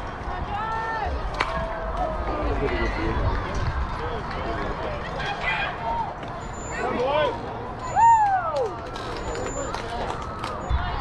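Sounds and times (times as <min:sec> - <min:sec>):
steady low rumble: 0:00.0 - 0:05.2
spectators shouting and cheering: 0:00.0 - 0:11.0.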